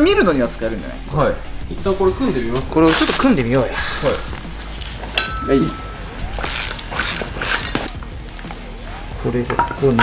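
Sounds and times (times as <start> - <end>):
metal parts clinking and scraping: 2.8 - 5.8, 6.4 - 7.9.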